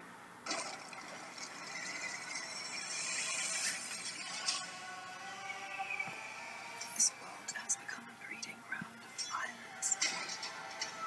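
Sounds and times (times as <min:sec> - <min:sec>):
faint music: 0:00.0 - 0:11.0.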